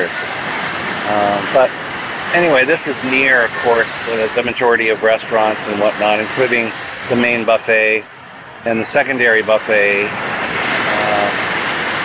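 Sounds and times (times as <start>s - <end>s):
surf washing on a beach: 0.0s - 12.0s.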